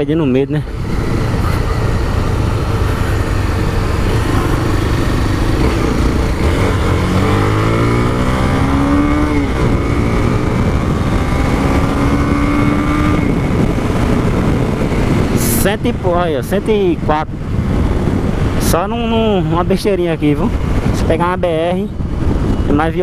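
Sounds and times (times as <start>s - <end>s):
wind noise on microphone: 0.0s - 23.0s
motorcycle engine: 0.6s - 18.6s.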